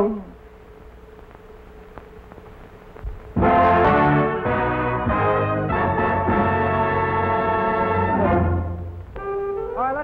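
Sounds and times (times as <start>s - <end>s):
low steady hum: 0.0s - 10.0s
brass section chords: 3.4s - 9.0s.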